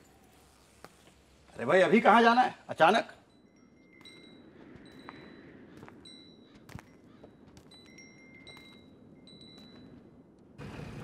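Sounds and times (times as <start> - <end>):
small metal bells ringing: 2.8 - 10.5.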